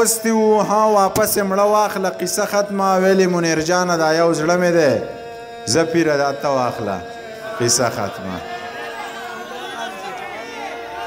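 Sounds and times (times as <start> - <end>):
recitation voice: 0.0 - 11.0
audience chatter: 6.3 - 11.0.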